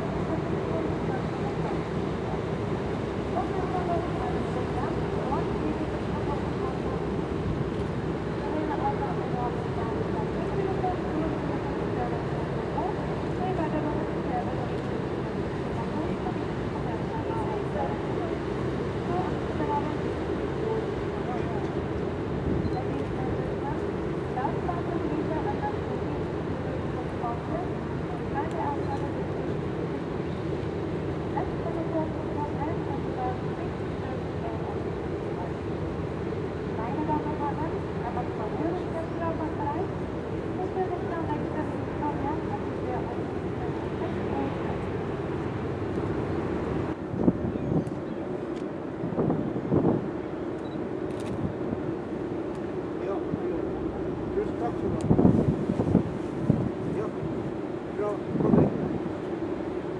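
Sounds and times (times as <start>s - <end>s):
ship engine hum: 0.0s - 59.9s.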